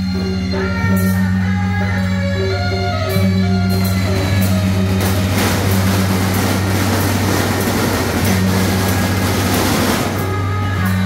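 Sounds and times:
firecrackers crackling: 3.4s - 11.0s.

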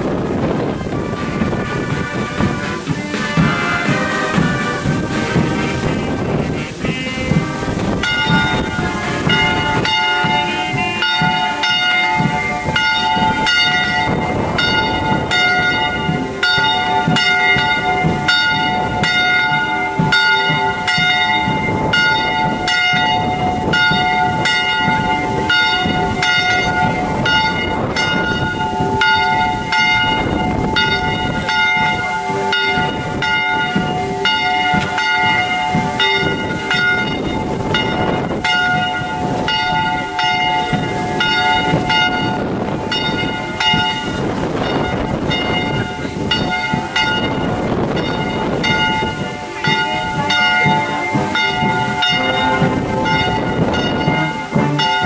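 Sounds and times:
church bells ringing: 0.0s - 55.0s.

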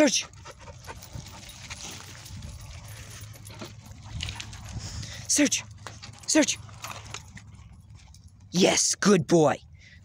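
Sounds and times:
puppies moving on dirt: 0.0s - 8.8s
low steady rumble: 0.2s - 8.8s.

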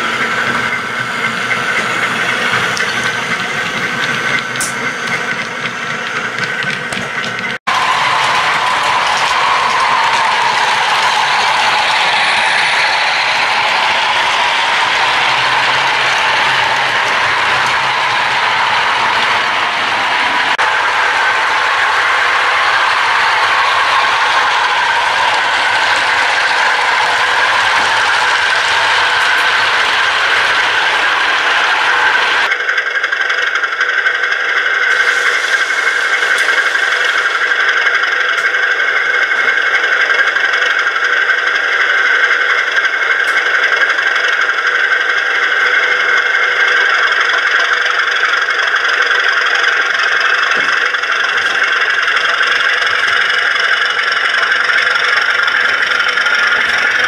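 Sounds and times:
model diesel locomotive running: 0.0s - 57.0s
high whistle: 7.7s - 19.2s.

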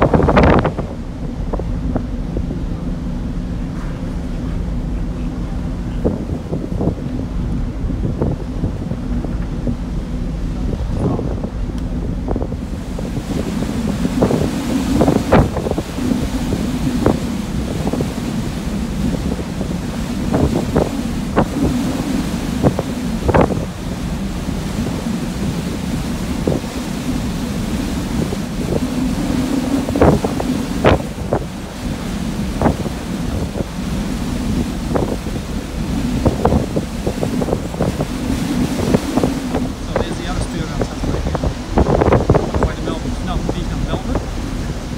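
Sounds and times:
rush of ferry wake: 0.0s - 44.9s
wind buffeting microphone: 0.0s - 44.9s.

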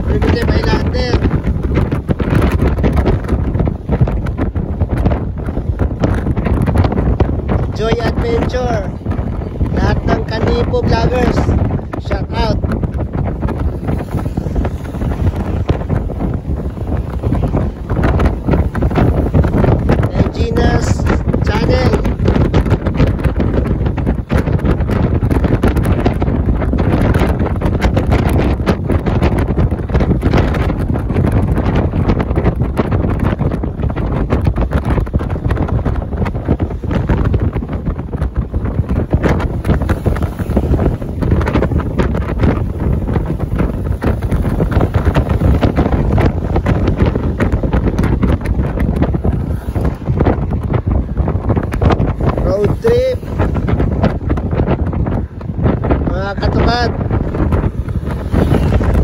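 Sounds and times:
road and engine rumble: 0.0s - 59.0s
wind buffeting microphone: 0.0s - 59.0s.

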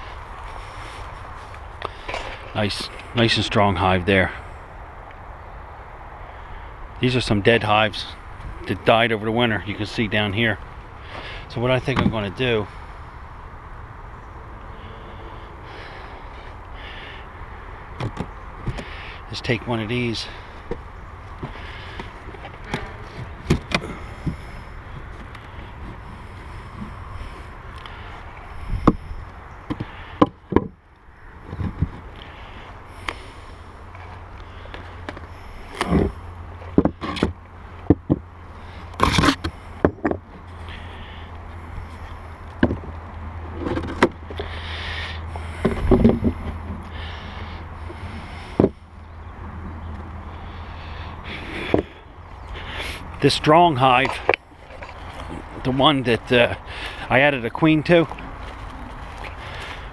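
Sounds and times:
steady low rumble: 0.0s - 59.9s
wooden boxes knocking and scraping: 21.4s - 24.4s, 29.7s - 30.8s, 31.5s - 32.1s, 35.8s - 38.2s, 39.0s - 40.3s, 42.5s - 43.0s, 43.6s - 44.3s, 45.6s - 46.8s.

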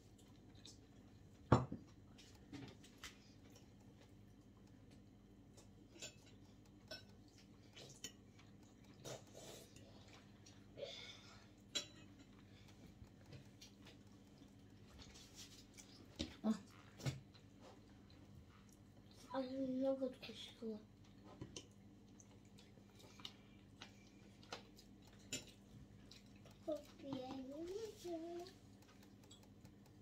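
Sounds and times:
dishes and cutlery clinking: 5.6s - 9.2s, 11.6s - 12.4s, 25.1s - 25.6s.

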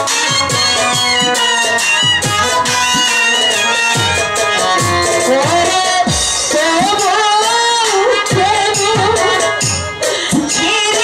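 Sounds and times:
accompanying music: 0.0s - 11.0s
person singing through amplification: 4.9s - 11.0s.

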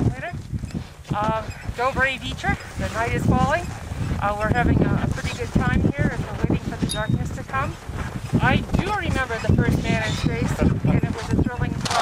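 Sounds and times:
wind rumbling on microphone: 0.0s - 12.0s
person speaking: 1.1s - 7.8s.

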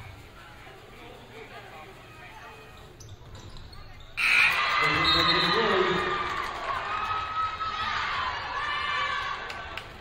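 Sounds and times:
low crowd chatter: 0.0s - 10.0s.

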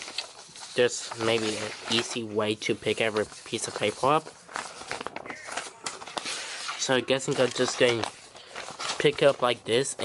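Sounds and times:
paper sheets rustling and sliding: 0.0s - 10.0s.

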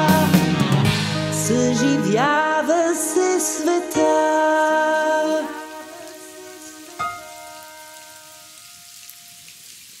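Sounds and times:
pop song: 0.0s - 7.8s
steady rain: 3.8s - 10.0s.

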